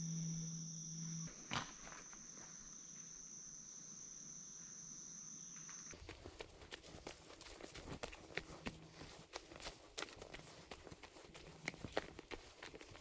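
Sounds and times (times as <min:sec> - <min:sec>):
footsteps on dry leaves and twigs: 0:05.9 - 0:13.0.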